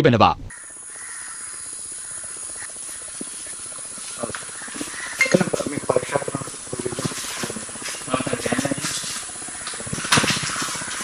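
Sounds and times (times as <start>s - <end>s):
steady hiss of ambience: 0.1s - 11.0s.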